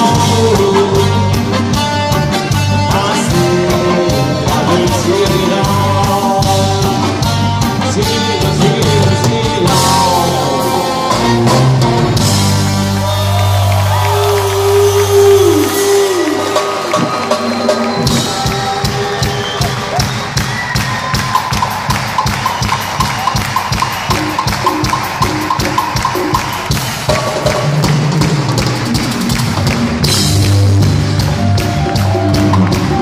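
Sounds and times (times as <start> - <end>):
rock band playing: 0.0 - 33.0
quick percussion rhythm: 13.8 - 33.0.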